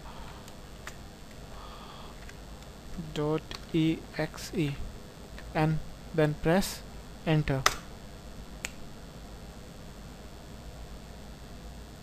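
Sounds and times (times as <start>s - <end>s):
faint steady low hum: 0.0s - 12.0s
sharp click: 7.6s - 7.9s.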